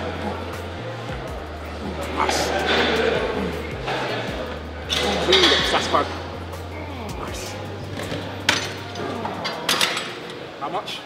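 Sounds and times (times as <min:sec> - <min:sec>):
weight-stack plates clanking: 0:08.0 - 0:10.4.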